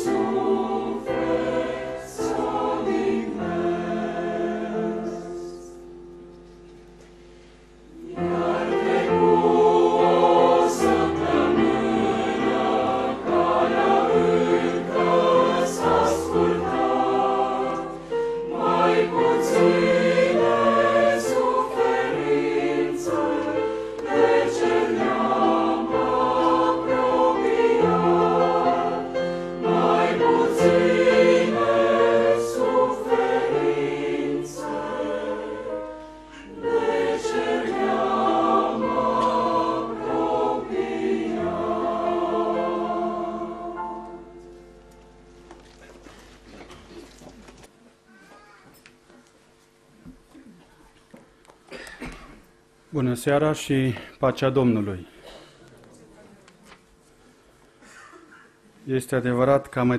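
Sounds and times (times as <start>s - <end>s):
mixed choir singing: 0.0s - 6.0s, 7.9s - 44.7s.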